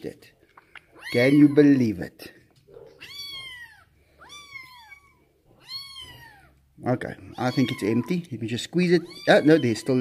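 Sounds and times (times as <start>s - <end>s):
kitten mewing: 7.2s - 8.3s.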